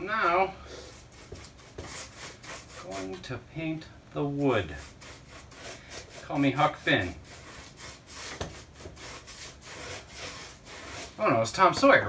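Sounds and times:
paintbrush rubbing strokes on board: 0.2 - 3.3, 4.6 - 12.0.

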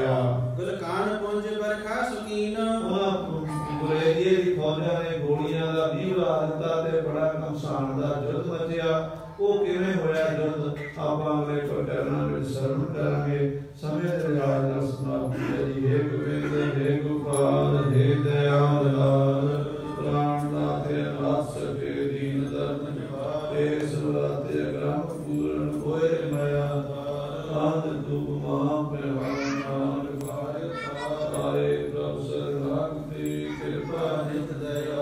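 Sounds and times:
men chanting: 0.0 - 35.0.

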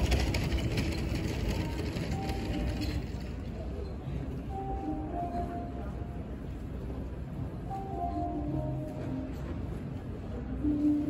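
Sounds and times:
background music: 4.3 - 11.0.

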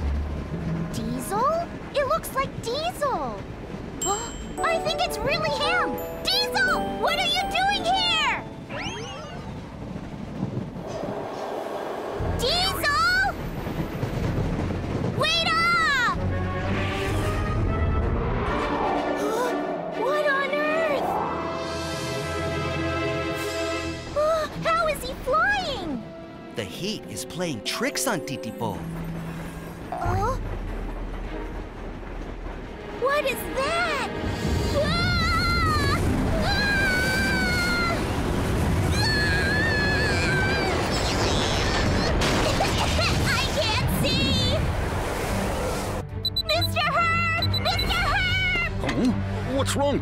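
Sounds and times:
low rumble: 0.0 - 4.6, 8.0 - 23.2
cartoon train rumbling: 0.0 - 48.8
cartoon background music: 4.0 - 9.7, 15.2 - 29.0, 46.1 - 50.0.

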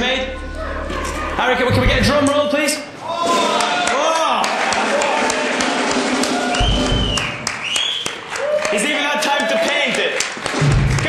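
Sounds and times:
people shouting and whooping: 0.1 - 1.7, 2.9 - 7.3, 8.1 - 10.1
drum roll: 1.7 - 2.4, 5.3 - 7.5, 10.5 - 11.0
bass drum and cymbal hit: 10.6 - 11.0.

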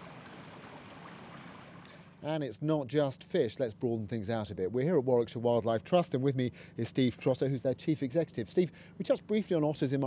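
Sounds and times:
water pouring over a weir: 0.0 - 1.9.

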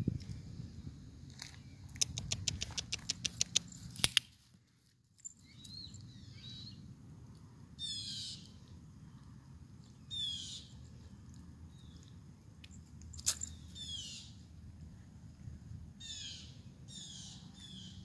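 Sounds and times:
sharp clicks: 1.9 - 4.3
high falling bird chirps: 7.8 - 8.5, 10.0 - 10.8, 13.4 - 14.4.

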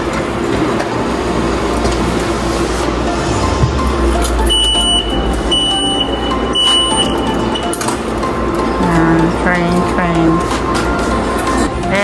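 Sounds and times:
ticket machine beeping: 1.6 - 12.0
low rumble of station noise: 2.2 - 8.6.

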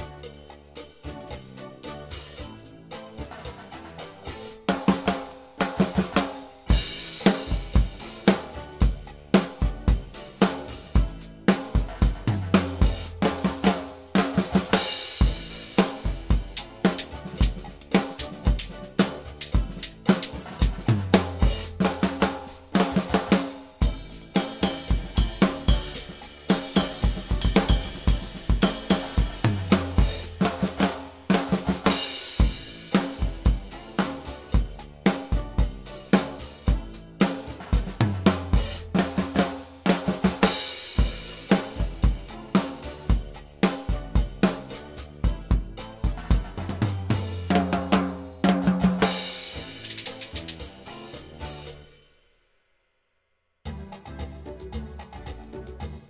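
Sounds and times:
drum kit groove: 0.0 - 52.3, 53.6 - 56.0
cymbal crashes: 6.6 - 8.3.

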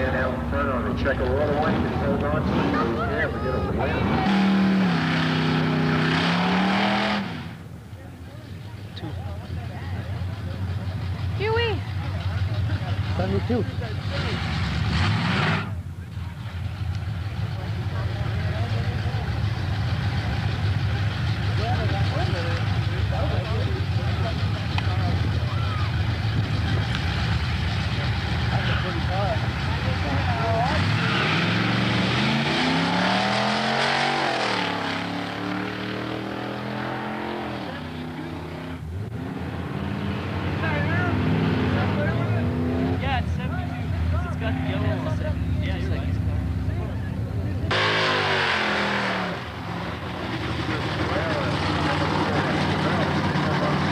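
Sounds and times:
racing car engines running: 0.0 - 53.9
engine accelerating: 8.7 - 53.9.

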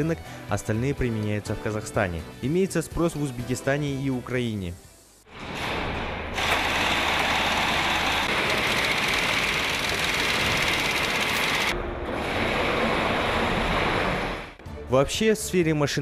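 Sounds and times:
factory machinery din: 5.3 - 14.6.

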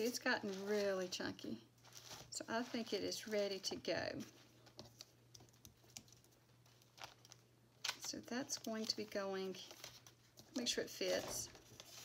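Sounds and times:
paper pages rustling: 0.0 - 1.2, 1.8 - 12.0
low steady hum: 0.0 - 12.0.

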